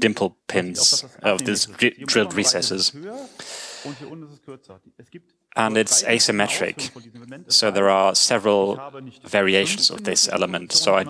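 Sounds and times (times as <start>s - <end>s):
quiet speech: 0.0s - 11.0s
soft breathy hiss: 3.1s - 4.1s.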